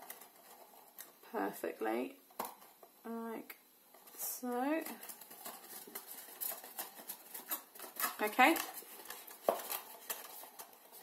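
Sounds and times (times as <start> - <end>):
card rustling: 4.0 - 11.0.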